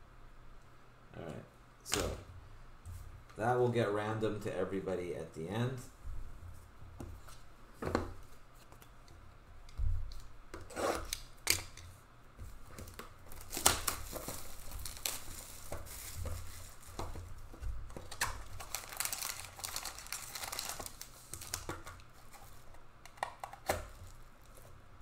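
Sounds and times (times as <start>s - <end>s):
plastic wrapping crinkling: 12.7s - 24.7s.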